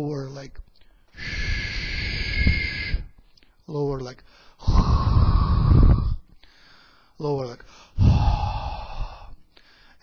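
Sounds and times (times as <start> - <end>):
man making breathy hissing sound: 1.1 - 3.2, 4.3 - 7.1, 7.7 - 10.0.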